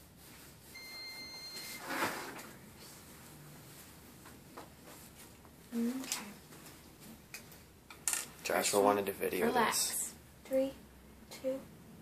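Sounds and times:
soft rustling: 2.4s - 7.7s.

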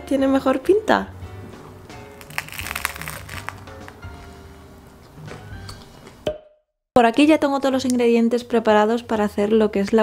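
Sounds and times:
soft background music: 0.0s - 6.3s, 7.0s - 10.0s
crunchy toast chewing: 2.1s - 4.1s.

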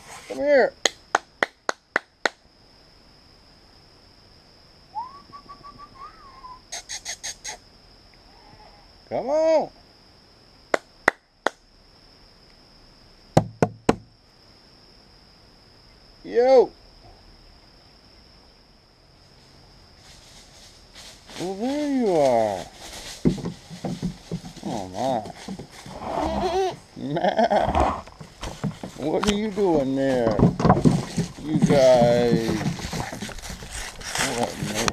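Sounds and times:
goats bleating: 25.9s - 26.8s.

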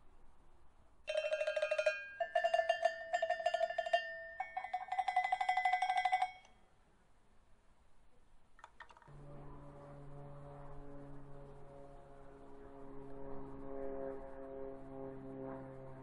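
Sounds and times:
metal chimes struck with beater: 1.1s - 6.5s.

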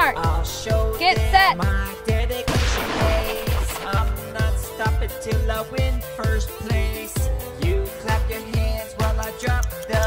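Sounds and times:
hip-hop backing track: 0.0s - 10.0s
starter pistol shot: 2.5s - 4.2s.

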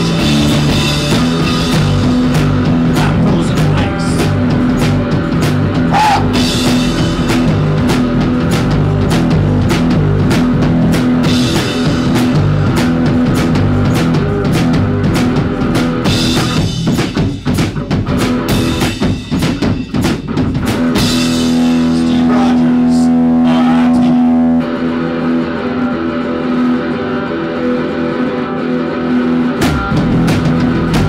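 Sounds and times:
bass guitar: 0.0s - 31.0s
drum kit: 0.0s - 31.0s
electric guitar: 0.0s - 31.0s.

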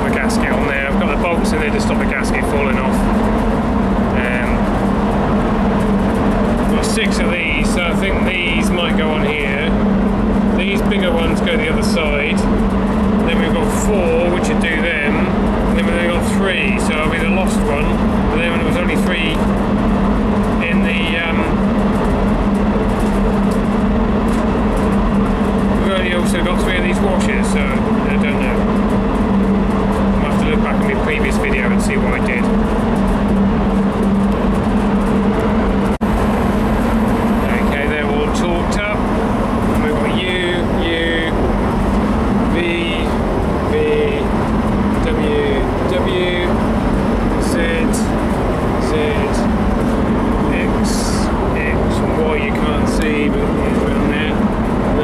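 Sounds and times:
constant low hum: 0.0s - 55.0s
machinery drone: 0.0s - 55.0s.

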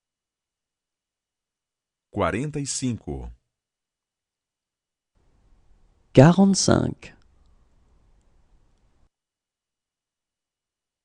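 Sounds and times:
faint room hiss: 5.2s - 9.1s.

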